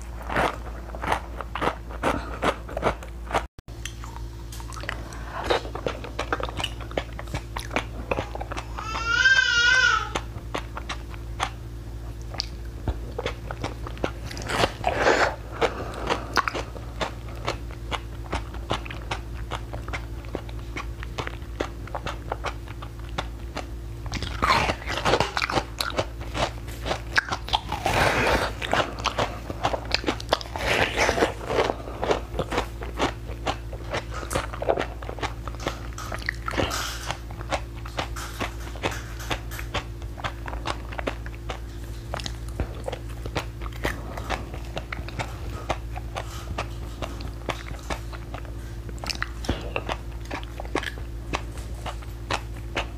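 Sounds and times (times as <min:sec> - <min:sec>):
steady low hum: 0:00.0 - 0:52.9
ice being bitten and chewed: 0:10.1 - 0:52.9.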